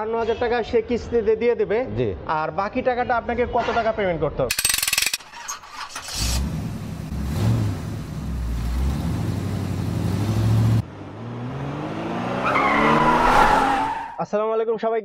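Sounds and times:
car engine revving: 0:05.8 - 0:14.0.

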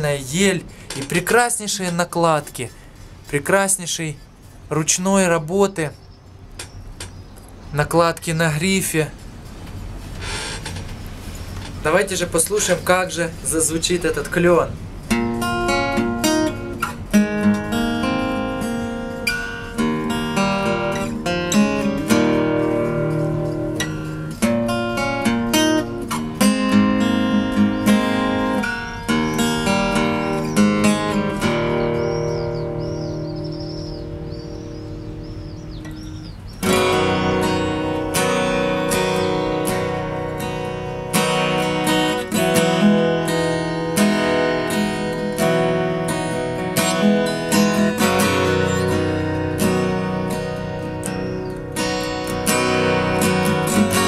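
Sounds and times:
fingerstyle acoustic guitar: 0:14.3 - 0:54.0.

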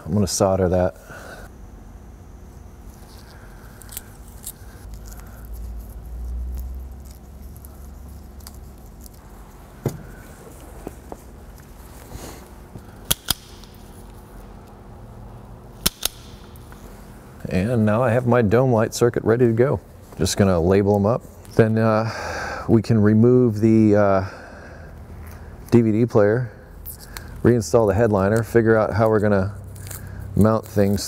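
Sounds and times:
low steady background noise: 0:00.0 - 0:31.0.

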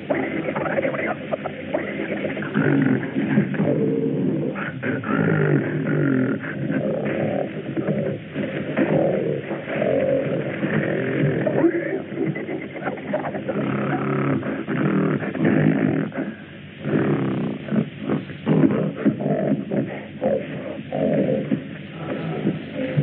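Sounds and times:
wild animals roaring and growling: 0:01.8 - 0:11.6, 0:16.8 - 0:23.0.

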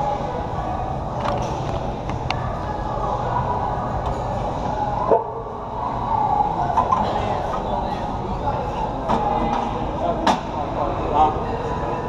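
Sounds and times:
busy gym background noise: 0:00.0 - 0:12.0.

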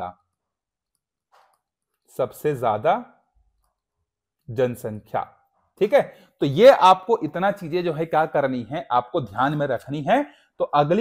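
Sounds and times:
stylus tapping tablet screen: 0:00.3 - 0:02.2.

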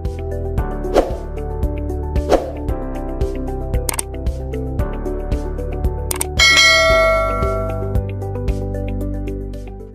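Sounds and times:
background music with steady beat: 0:00.0 - 0:09.9
quick clicks: 0:03.9 - 0:04.1, 0:06.1 - 0:06.3
bright bell ding: 0:06.4 - 0:08.0.

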